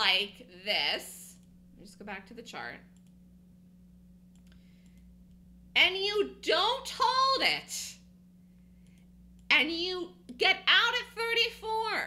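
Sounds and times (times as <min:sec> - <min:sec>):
low hum: 0:00.0 - 0:12.0
faint clicks: 0:04.3 - 0:05.4.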